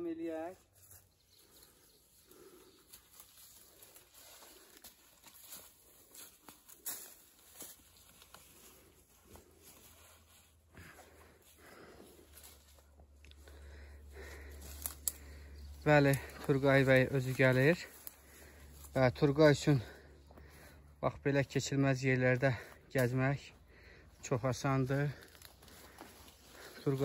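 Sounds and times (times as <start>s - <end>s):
leaves and branches rustling: 0.0s - 20.9s, 21.9s - 27.0s
faint footsteps: 0.6s - 21.1s, 22.1s - 27.0s.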